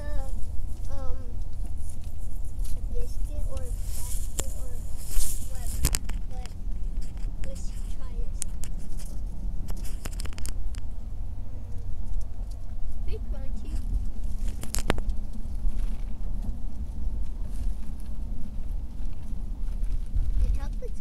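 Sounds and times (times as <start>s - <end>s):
car cabin road and engine rumble: 0.0s - 21.0s.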